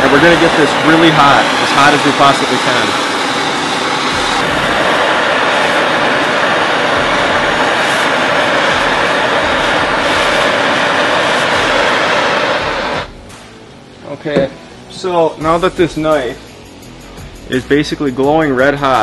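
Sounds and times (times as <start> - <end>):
propane torch flame hissing: 0.0 - 13.6, 14.9 - 19.0.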